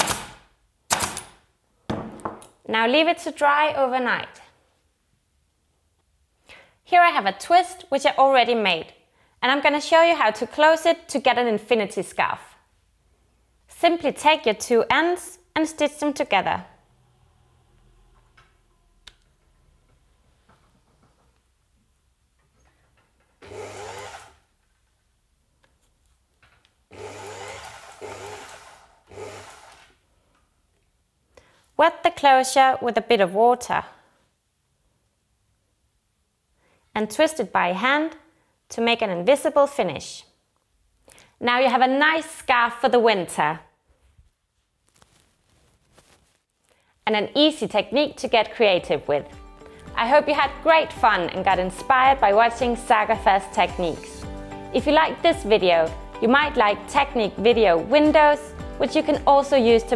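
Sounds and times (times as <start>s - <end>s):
staple gun firing: 0.0s - 1.4s
sewing machine motor hum: 23.4s - 24.4s, 26.9s - 30.0s.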